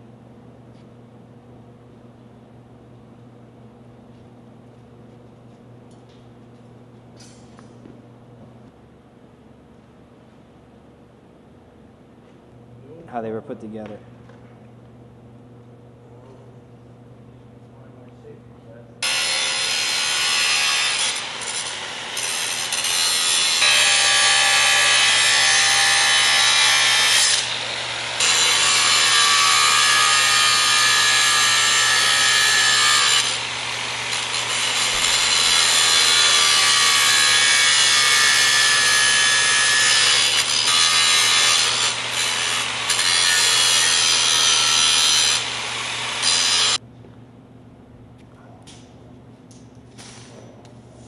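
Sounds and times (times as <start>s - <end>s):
angle grinder cutting steel wire: 19.0s - 46.8s.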